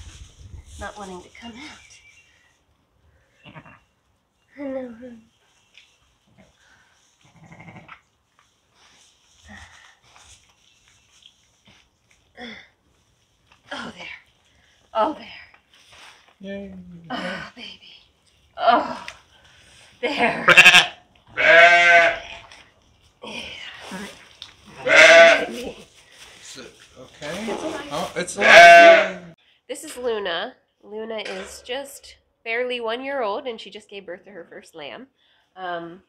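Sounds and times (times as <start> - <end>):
sheep bleating: 20.4 - 22.2, 24.7 - 25.6, 28.4 - 29.4
ewe moaning: 28.4 - 29.4.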